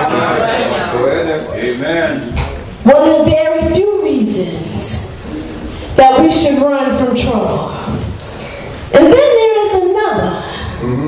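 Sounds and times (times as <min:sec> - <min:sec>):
woman preaching into microphone: 0:02.8 - 0:08.2, 0:08.9 - 0:10.8.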